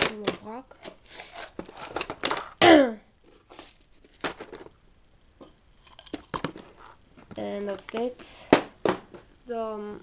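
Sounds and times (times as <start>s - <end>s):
items handled in plastic box: 3.3s - 4.8s.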